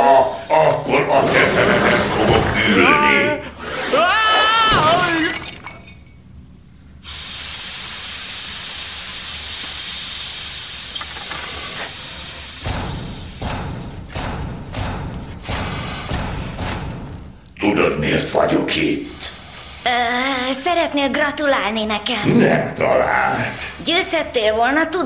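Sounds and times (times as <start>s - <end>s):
steam hissing: 0.0s - 2.2s, 7.0s - 17.4s, 18.6s - 20.7s, 23.4s - 25.0s
gliding vocal cry: 0.0s - 5.3s
clattering knocks and clinks: 5.4s - 6.4s.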